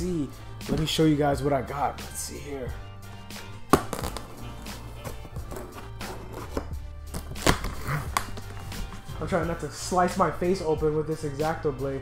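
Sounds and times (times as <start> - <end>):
background music: 0.0 - 12.0
blade cutting tape and cardboard: 5.0 - 8.4.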